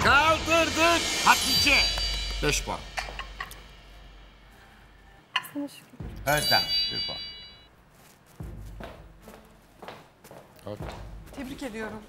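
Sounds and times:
low hum: 0:00.0 - 0:05.3.

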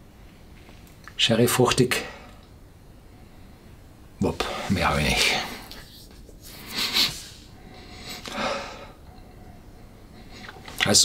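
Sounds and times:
person sniffing sharply: 0:05.7 - 0:08.6.

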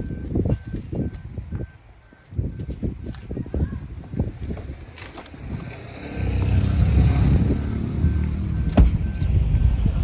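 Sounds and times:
car engine starting and idling: 0:04.7 - 0:10.0
sharp thump: 0:08.7 - 0:09.0.

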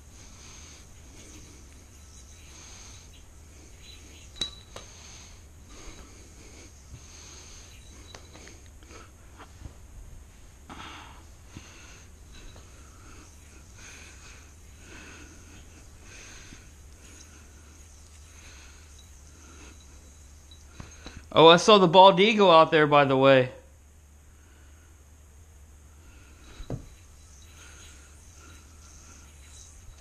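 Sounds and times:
soft nasal breaths: 0:00.0 - 0:21.6, 0:24.2 - 0:25.2, 0:25.8 - 0:30.0
low steady hum: 0:00.0 - 0:30.0.

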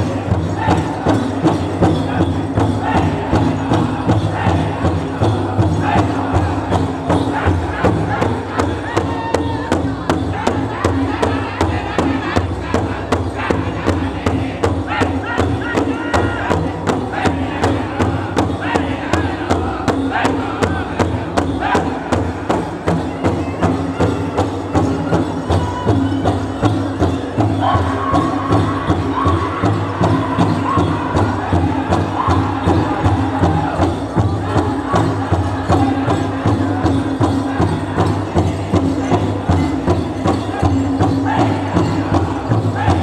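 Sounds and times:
large hide drum beating: 0:00.0 - 0:43.0
men singing in unison: 0:00.0 - 0:43.0.

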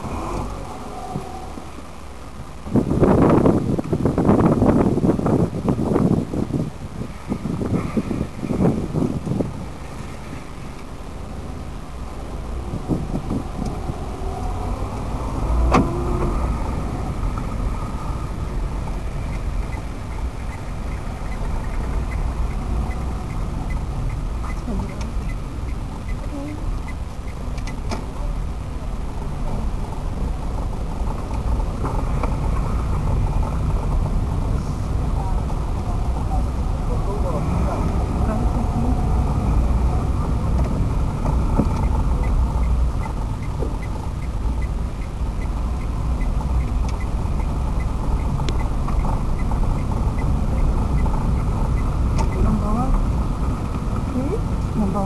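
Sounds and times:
car engine rumbling: 0:00.0 - 0:55.0
light regular ticking: 0:16.6 - 0:28.2, 0:40.5 - 0:54.8.

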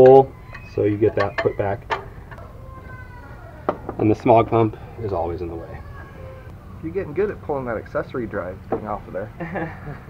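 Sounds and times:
low background noise: 0:00.0 - 0:10.0.

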